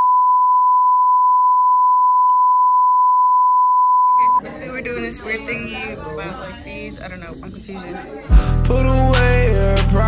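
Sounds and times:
steady test tone beep: 0.0 - 4.4.

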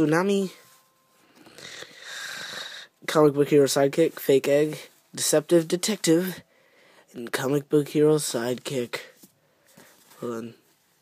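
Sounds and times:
person's wheezy breath: 1.2 - 3.0.

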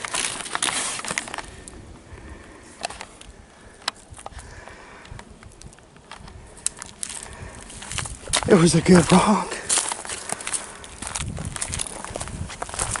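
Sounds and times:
footsteps crunching on leafy trail: 0.0 - 3.2, 6.0 - 13.0
walking stick clicks: 5.0 - 13.0.

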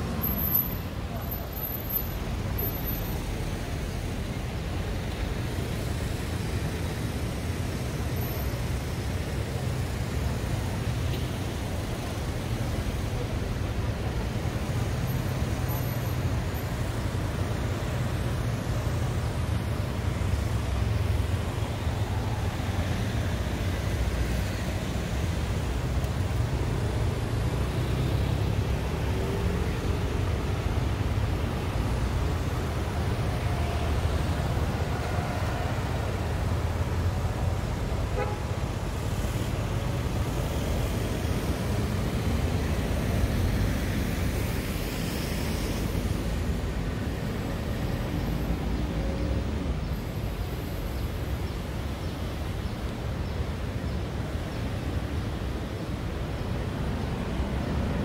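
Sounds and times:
low traffic rumble: 0.0 - 58.0
cars driving past: 9.4 - 58.0.

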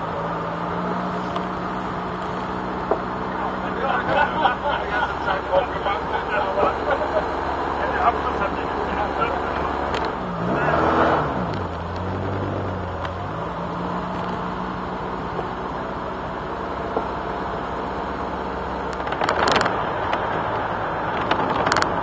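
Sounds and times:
car engine running: 0.0 - 22.0.

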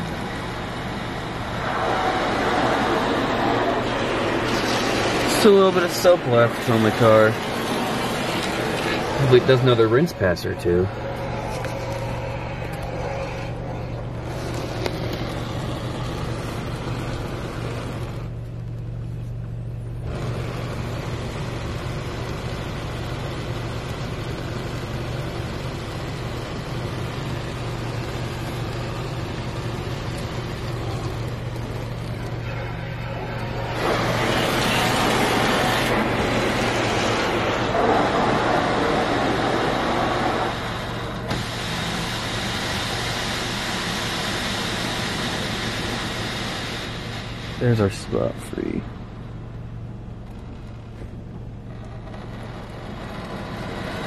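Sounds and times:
low hum: 0.0 - 54.0
water spray hissing on car: 0.2 - 9.8, 26.9 - 48.7.

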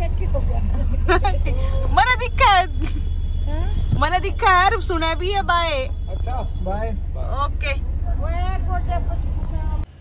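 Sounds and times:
car engine running: 0.0 - 10.0.

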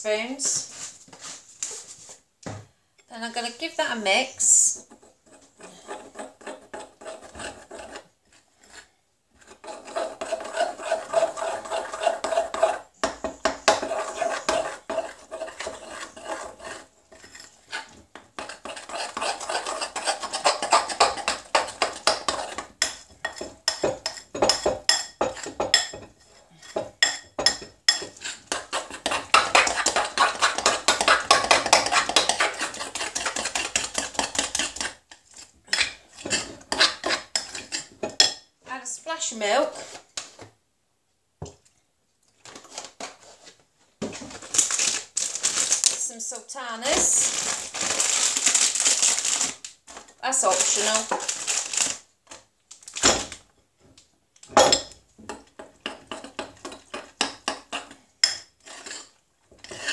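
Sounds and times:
utensil beating batter in glass bowl: 9.4 - 38.4.

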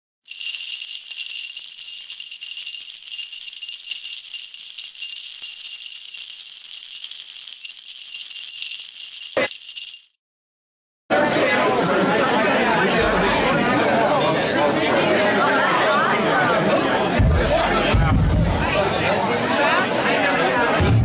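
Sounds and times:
sleigh bells jingling: 0.3 - 10.2.

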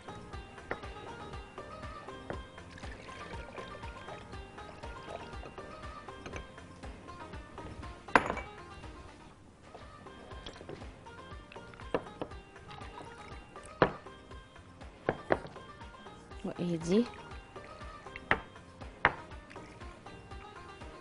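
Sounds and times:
background music: 0.0 - 21.0
glass jars knocking and clinking: 0.7 - 1.0, 8.1 - 8.7, 13.7 - 14.1, 15.1 - 15.6, 18.2 - 19.3.

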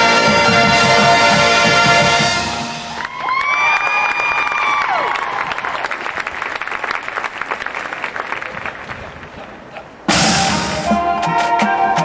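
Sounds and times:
marching band brass chord: 0.0 - 3.0, 10.0 - 12.0
audience applause and cheering: 2.9 - 10.1.

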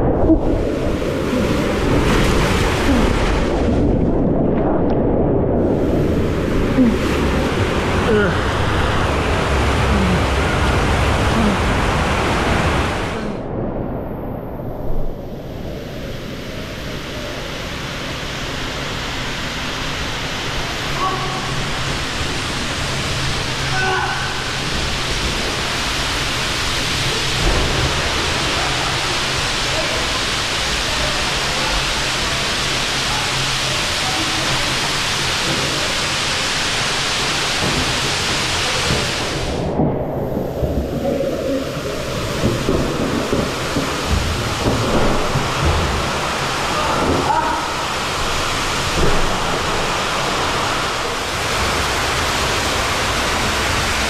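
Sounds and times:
knocks and splashes: 0.0 - 5.0, 26.7 - 30.1, 37.2 - 53.9
water rushing: 0.0 - 54.0.

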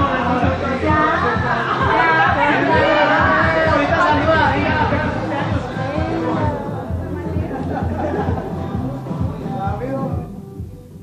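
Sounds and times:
loud music: 0.0 - 11.0
people chattering: 0.0 - 11.0.

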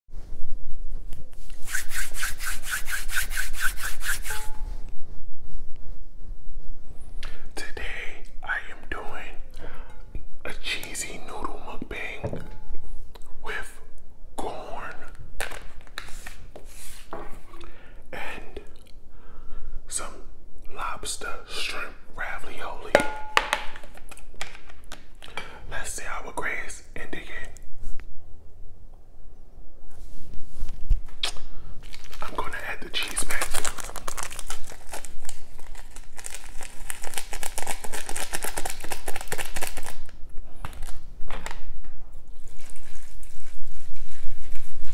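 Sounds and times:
rapid rubbing: 1.6 - 4.6
man whispering: 7.4 - 9.6, 10.4 - 12.5, 13.4 - 15.2, 18.1 - 18.9, 19.9 - 23.0, 25.6 - 27.8, 32.1 - 33.9.

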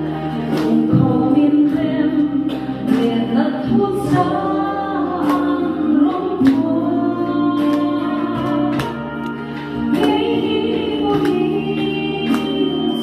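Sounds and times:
woman singing into a microphone: 0.0 - 13.0.

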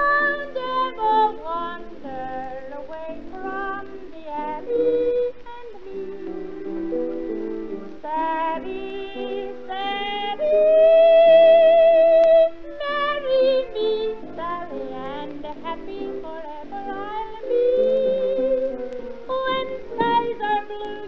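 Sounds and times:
woman singing with vibrato: 0.0 - 6.6, 8.0 - 21.0
instrumental accompaniment: 0.0 - 21.0.

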